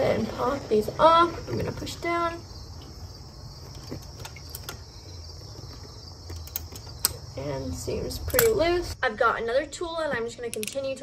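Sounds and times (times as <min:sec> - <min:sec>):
crickets chirping: 0:00.0 - 0:11.0
ratchet wrench clicks: 0:10.5 - 0:10.8.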